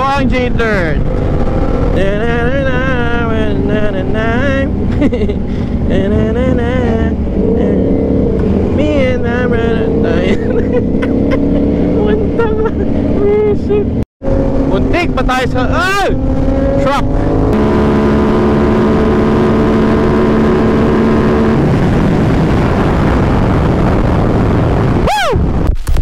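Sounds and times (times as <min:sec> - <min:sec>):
wind rushing past microphone: 0:00.0 - 0:25.8
motorcycle engine running: 0:00.4 - 0:24.8.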